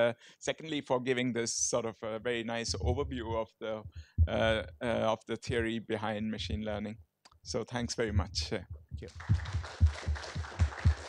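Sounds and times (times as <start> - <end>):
loud hand clapping close by: 9.1 - 11.0
audience applause: 9.2 - 11.0.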